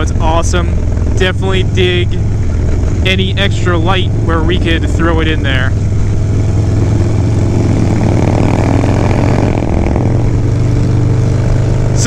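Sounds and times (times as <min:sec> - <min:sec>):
motorcycle engine cruising: 0:00.0 - 0:12.0
wind rushing over microphone: 0:00.0 - 0:12.0.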